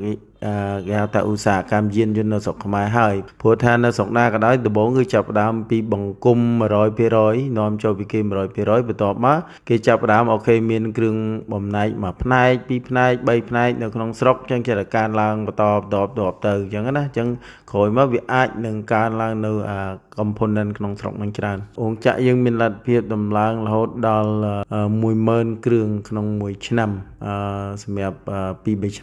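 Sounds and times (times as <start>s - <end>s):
man speaking slowly: 0.0s - 29.0s
man talking: 0.0s - 29.0s.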